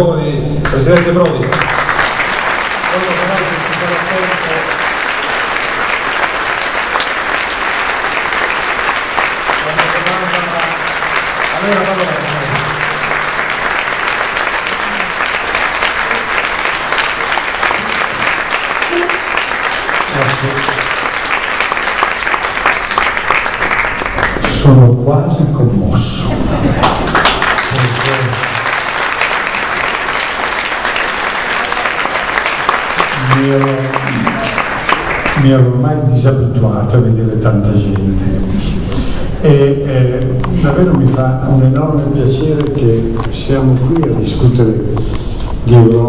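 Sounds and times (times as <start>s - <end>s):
audience applauding: 0.6s - 24.9s, 26.6s - 36.1s.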